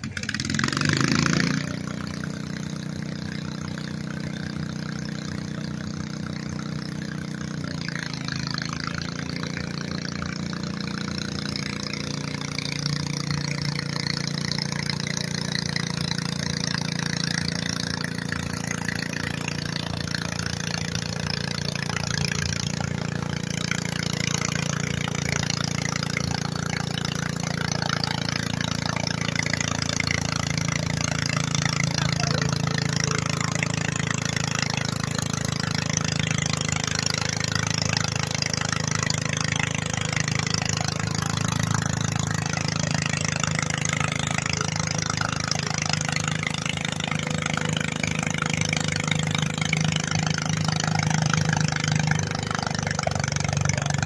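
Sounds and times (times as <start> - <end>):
tractor engine running hard: 0.0 - 54.0.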